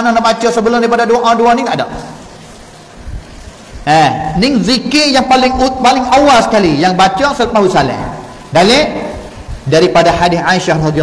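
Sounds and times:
man talking into a microphone: 0.0 - 2.2, 3.8 - 11.0
room noise hiss: 0.0 - 11.0.

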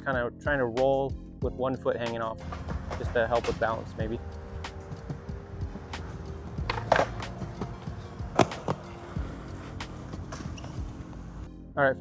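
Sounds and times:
skateboard clacks: 2.4 - 11.5
skateboard wheels rolling on concrete: 2.4 - 11.5.

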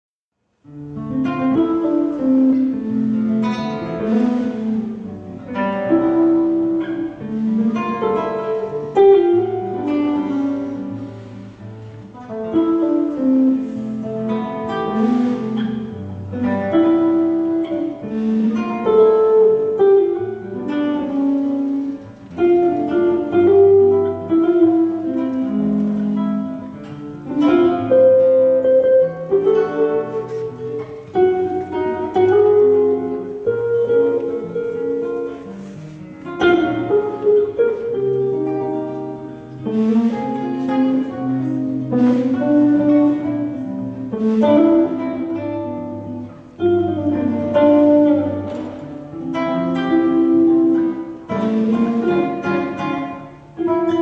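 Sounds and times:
classical guitar picking: 0.5 - 54.0
electric bass notes: 0.7 - 54.0.

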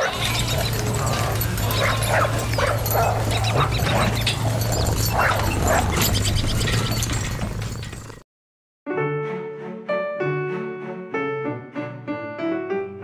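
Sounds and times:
dog barking and yipping: 0.0 - 8.1.

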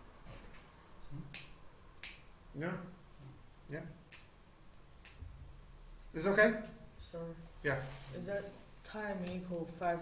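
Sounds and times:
sharp high-pitched clicks: 4.1 - 4.4.

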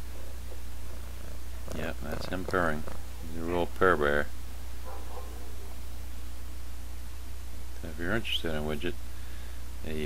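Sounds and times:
person speaking: 1.7 - 4.3.

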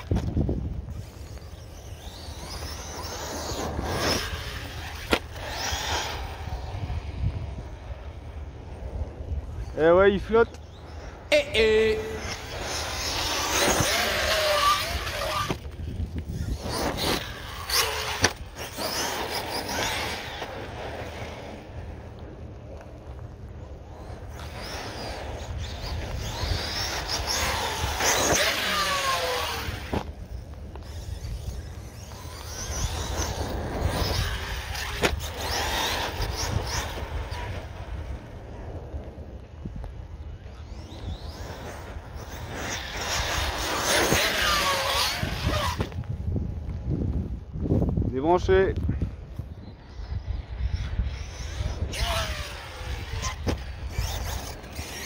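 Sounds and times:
electric motor whining: 0.0 - 21.9, 23.9 - 47.3, 49.4 - 55.0
wind rumble on microphone: 0.0 - 55.0.

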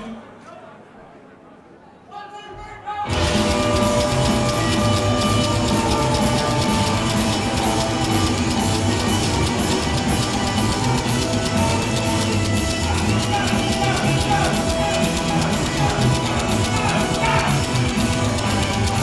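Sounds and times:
rockabilly band playing live: 3.1 - 19.0.

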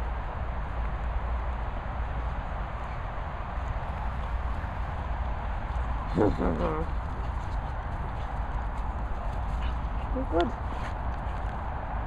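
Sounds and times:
low wind rumble on microphone: 0.0 - 12.0
running footsteps on grass: 0.0 - 12.0.

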